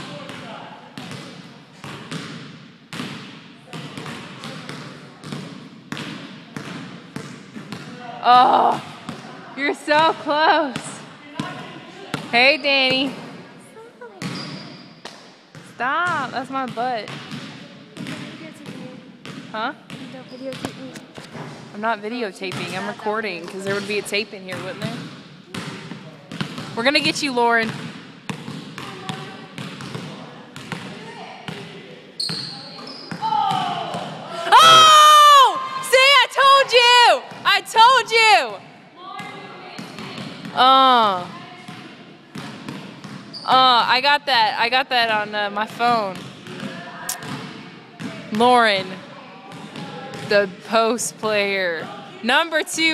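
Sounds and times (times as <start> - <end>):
basketball bouncing on hardwood floor: 1.0 - 7.9, 14.2 - 21.4, 23.4 - 30.9.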